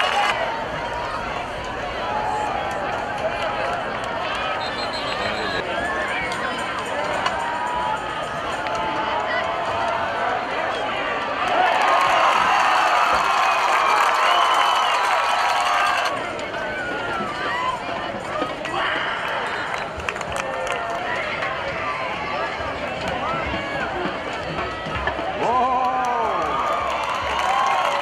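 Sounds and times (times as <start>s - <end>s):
crowd yelling and cheering: 0.0s - 28.0s
stadium crowd talking: 0.0s - 28.0s.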